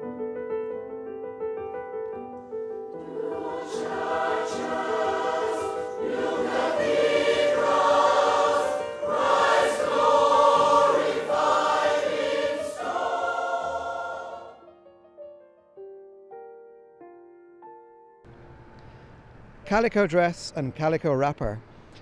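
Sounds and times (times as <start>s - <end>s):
electric keyboard: 0.0s - 19.0s
choir singing: 2.9s - 14.9s.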